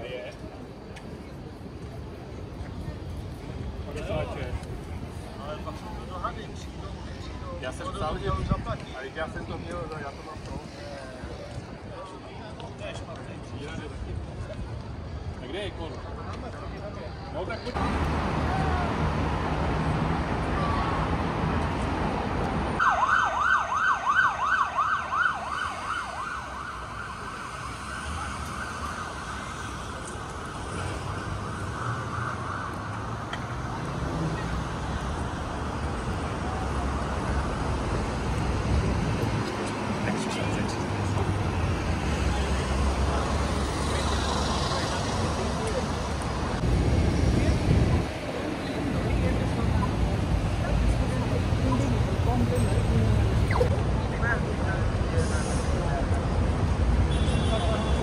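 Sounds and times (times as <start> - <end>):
street traffic passing: 0.0 - 58.0
siren yelping: 22.8 - 29.8.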